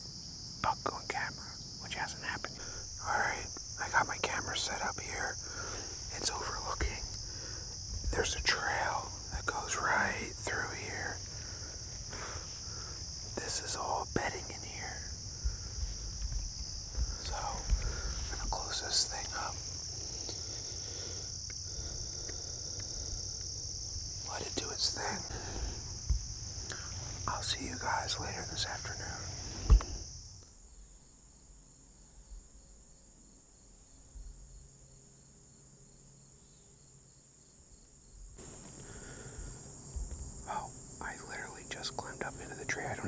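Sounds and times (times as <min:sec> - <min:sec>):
insects droning: 0:00.0 - 0:43.0
man whispering: 0:00.6 - 0:16.3, 0:16.9 - 0:23.4, 0:24.1 - 0:26.0, 0:26.6 - 0:30.0, 0:40.4 - 0:43.0.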